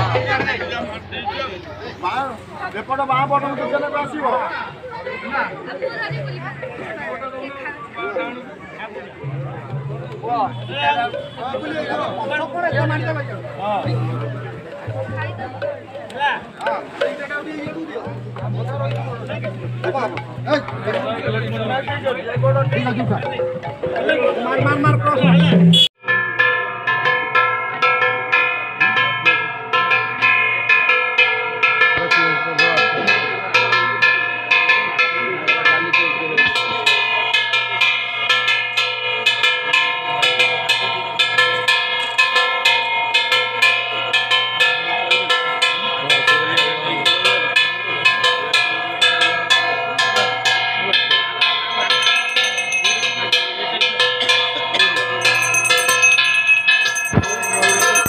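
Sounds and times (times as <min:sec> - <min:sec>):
metal bells ringing: 0:03.0 - 0:58.0
higher ringing tone: 0:55.2 - 0:58.0.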